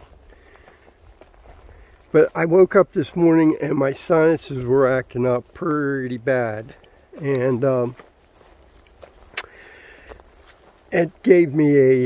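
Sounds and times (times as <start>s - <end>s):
footsteps on forest floor: 0.0s - 12.0s.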